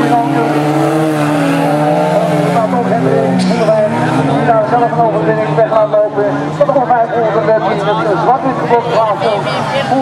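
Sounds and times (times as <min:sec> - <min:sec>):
car engines running: 0:00.0 - 0:10.0
commentator over public address: 0:00.0 - 0:10.0.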